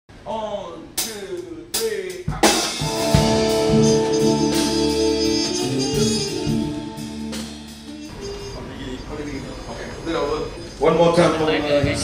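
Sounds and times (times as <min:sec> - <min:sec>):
drum and cymbal hits: 0:01.0 - 0:08.7
jazz band held chord: 0:02.3 - 0:09.4.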